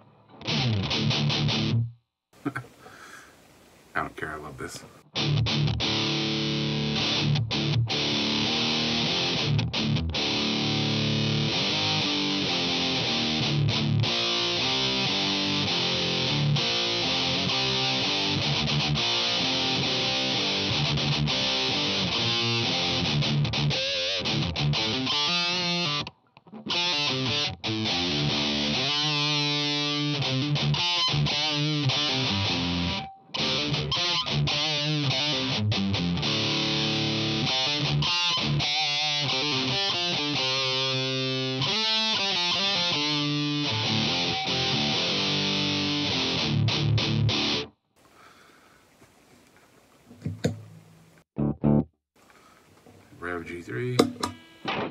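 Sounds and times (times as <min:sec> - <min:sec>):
distorted electric guitar: 0:00.0 - 0:02.6, 0:05.0 - 0:47.7, 0:50.2 - 0:51.9, 0:53.2 - 0:54.9.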